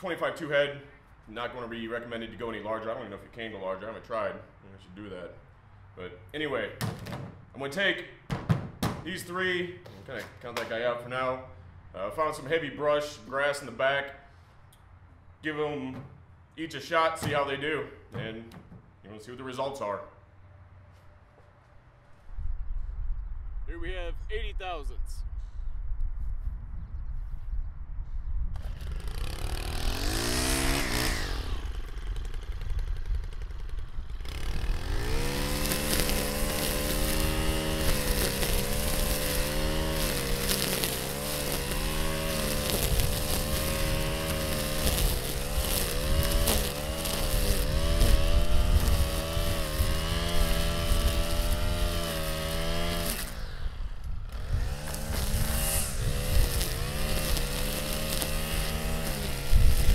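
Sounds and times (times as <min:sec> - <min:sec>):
string trimmer engine revving: 0:28.6 - 0:59.9
trimmer line cutting grass: 0:28.6 - 0:59.9.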